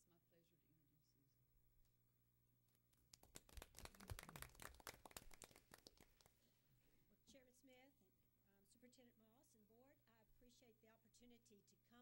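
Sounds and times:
small audience clapping: 2.9 - 6.5.

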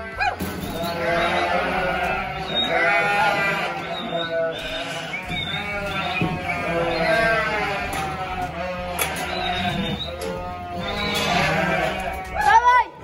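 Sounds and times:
lambs bleating: 0.0 - 12.9.

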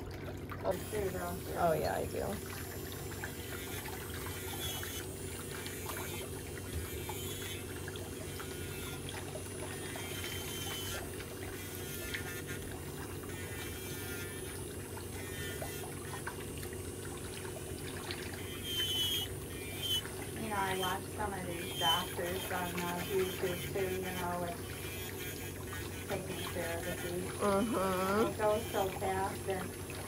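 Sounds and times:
electric nail drill grinding: 0.7 - 30.0.

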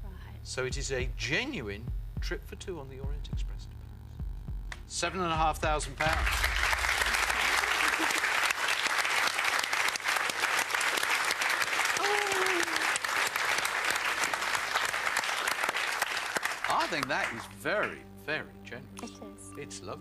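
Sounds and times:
audience applauding: 5.8 - 18.0.

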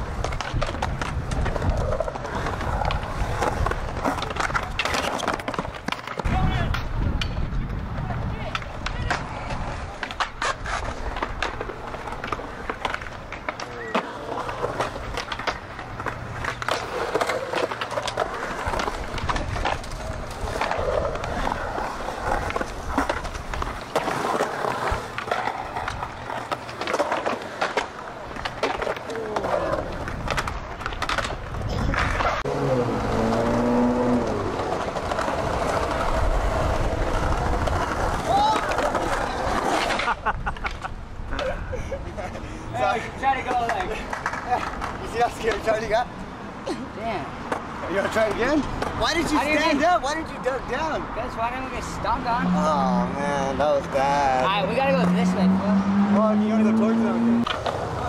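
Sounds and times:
skateboard clacks and knocks: 0.0 - 41.6, 42.8 - 46.1, 57.4 - 58.0
skateboard wheels rolling on concrete: 0.0 - 58.0.

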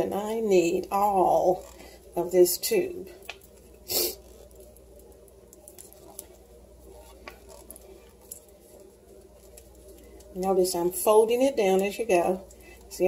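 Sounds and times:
tube squishing: 3.2 - 10.4.

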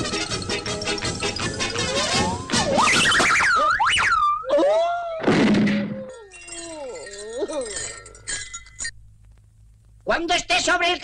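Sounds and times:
tinkling clinking sounds: 0.0 - 2.4, 6.0 - 9.0
swooping whistle-like tones: 0.2 - 4.5
loud crash: 5.2 - 6.0.

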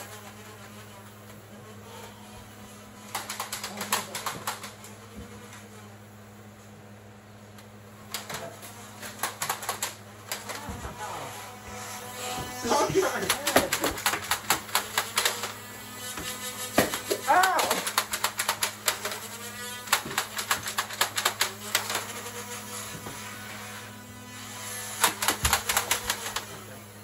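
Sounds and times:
toy blasters clicking and snapping: 3.0 - 5.0, 8.0 - 10.8, 13.0 - 22.5, 24.8 - 26.7
short voice calls: 17.2 - 17.9.

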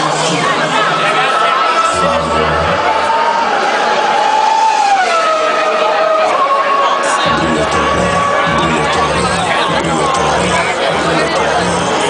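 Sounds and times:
dance music: 0.0 - 3.7, 7.0 - 12.0
crowd of partygoers: 0.0 - 12.0.

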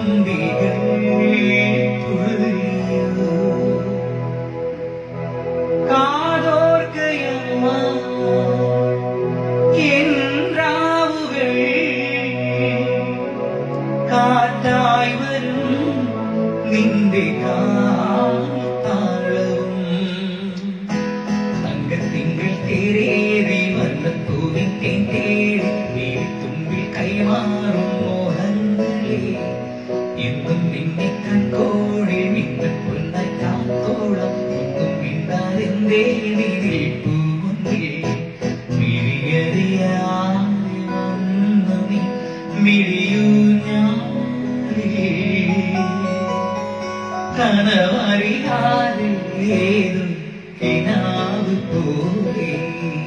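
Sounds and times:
electronic keyboard: 0.0 - 53.0
man singing into a microphone: 0.0 - 53.0.

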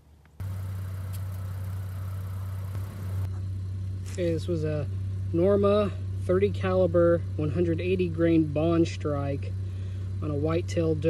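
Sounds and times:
truck engine idling: 0.4 - 3.8.

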